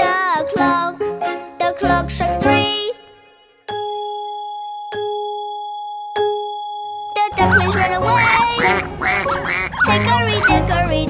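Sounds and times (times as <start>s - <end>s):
clock chime striking: 3.8s - 9.2s.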